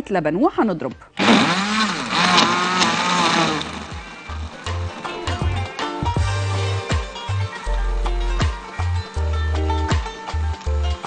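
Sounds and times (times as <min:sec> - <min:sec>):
background music with bass line: 0:00.9 - 0:11.0
blender motor running: 0:01.2 - 0:05.7.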